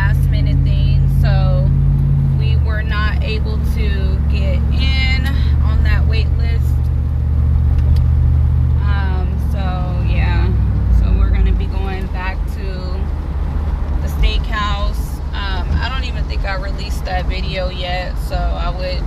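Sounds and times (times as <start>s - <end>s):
car cabin road rumble: 0.0s - 19.0s
person talking: 2.4s - 6.7s, 8.8s - 13.0s, 14.0s - 19.0s.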